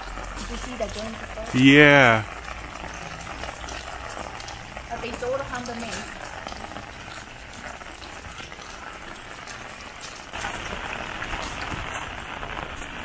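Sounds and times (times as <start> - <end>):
heavy rain falling: 0.0 - 13.0.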